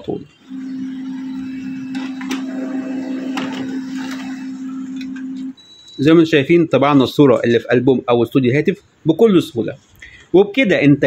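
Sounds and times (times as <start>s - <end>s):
laser printer humming: 0.0s - 6.0s
printer clicks: 1.9s - 5.4s.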